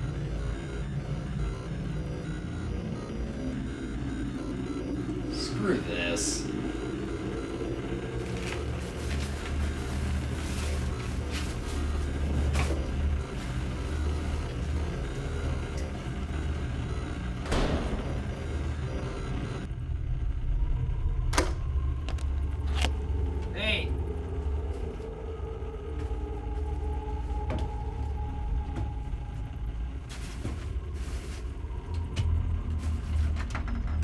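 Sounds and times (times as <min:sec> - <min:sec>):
wavering tone: 0:00.0 - 0:33.3
low rumbling drone: 0:00.0 - 0:34.0
knocks and creaks: 0:31.8 - 0:34.0.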